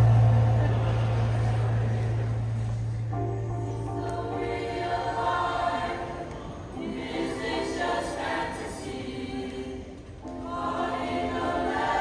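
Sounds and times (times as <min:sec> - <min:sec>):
low bass note: 0:00.0 - 0:04.0.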